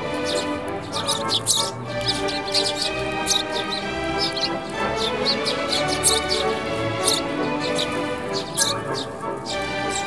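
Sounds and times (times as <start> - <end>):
background music: 0.0 - 10.0
sparrows chirping: 0.0 - 10.0.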